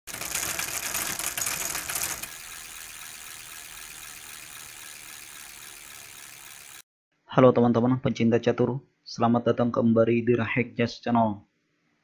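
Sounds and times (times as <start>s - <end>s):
fast clicking rattle: 0.1s - 6.8s.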